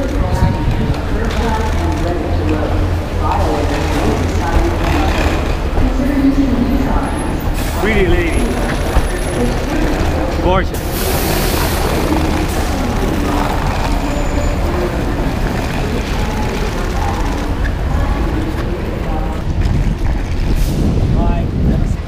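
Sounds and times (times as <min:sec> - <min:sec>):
background voices: 0:00.0 - 0:22.0
buses and cars idling and passing: 0:00.0 - 0:22.0.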